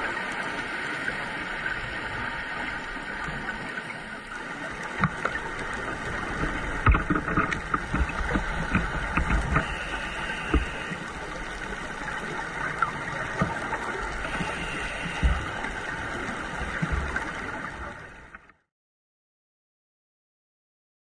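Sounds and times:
steady hiss: 8.2 - 16.6
regulator breathing underwater: 9.4 - 11.1, 14.2 - 15.8.

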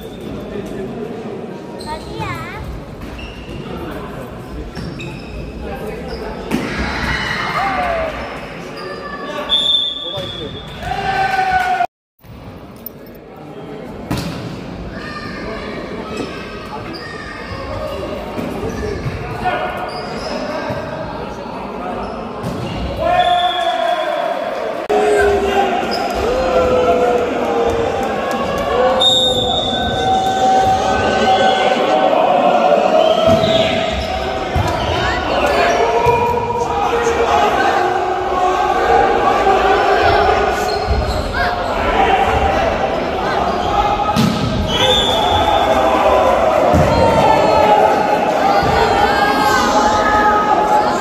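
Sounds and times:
voices in echoing gym: 0.0 - 51.0
sneakers squeaking on court floor: 1.8 - 3.8, 4.7 - 6.5, 19.8 - 20.8, 40.6 - 41.8.

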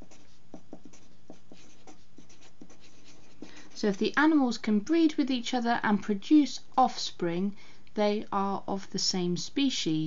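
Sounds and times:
marker writing on paper: 0.0 - 4.2.

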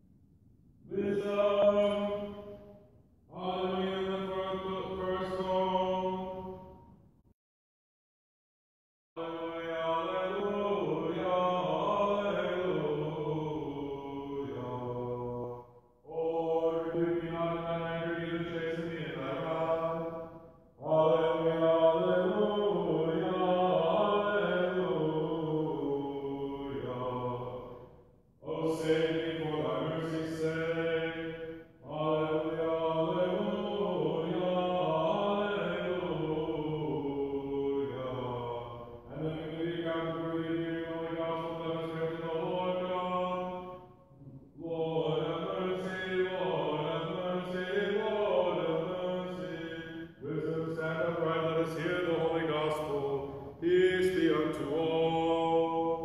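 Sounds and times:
person chanting: 0.9 - 6.8, 9.2 - 56.0.

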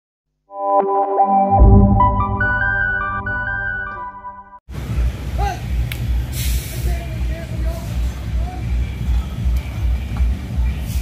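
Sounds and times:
diesel bus engine rumbling: 3.7 - 11.0
air brakes hissing: 6.2 - 8.2, 10.8 - 11.0.

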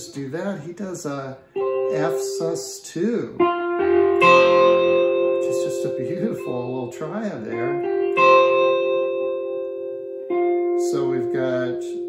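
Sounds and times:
electric guitar chord ringing: 1.1 - 12.0.

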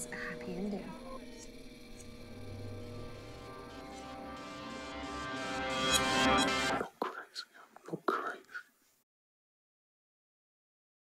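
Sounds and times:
music: 0.0 - 7.2
person whispering: 5.9 - 8.8.

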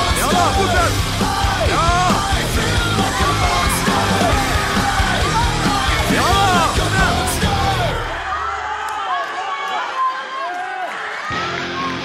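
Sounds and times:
raised voices calling out: 0.0 - 8.3.

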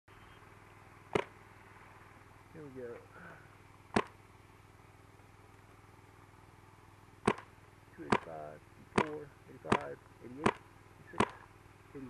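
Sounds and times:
paintball marker shots: 1.1 - 1.4, 3.9 - 4.2, 7.2 - 11.5.

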